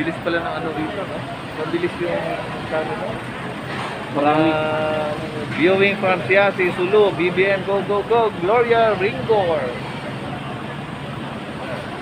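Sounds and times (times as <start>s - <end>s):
indistinct crowd voices: 0.0s - 12.0s.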